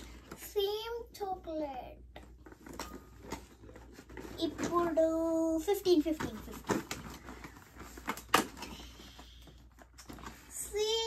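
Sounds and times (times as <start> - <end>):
faint cardboard rustling: 2.3 - 11.0.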